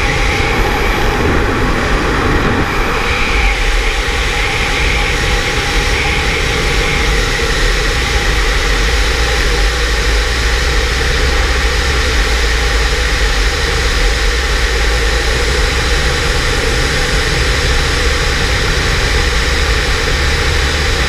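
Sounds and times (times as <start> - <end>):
loud wind rushing: 0.0 - 21.0
wind buffeting on microphone: 0.0 - 21.0.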